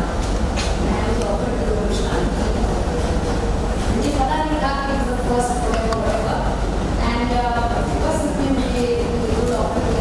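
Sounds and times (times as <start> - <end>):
person speaking: 0.8 - 10.0.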